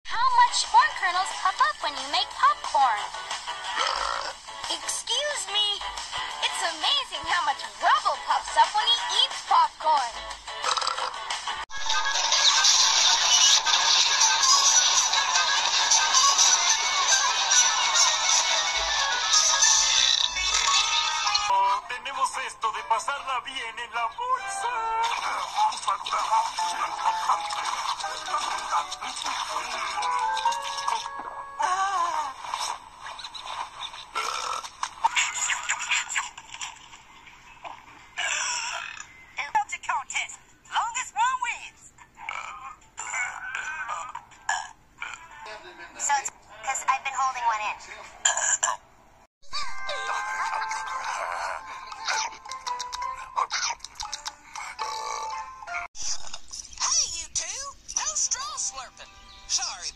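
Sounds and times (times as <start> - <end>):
cartoon soundtrack music: 0.1 - 32.5, 49.4 - 56.3
burp: 3.7 - 4.4, 10.6 - 11.2, 34.2 - 34.9, 38.2 - 39.2, 42.2 - 45.3, 48.2 - 48.8, 54.6 - 56.2
messy eating sound effects: 10.6 - 21.5, 49.5 - 55.4
cartoon sound effects: 49.4 - 53.8.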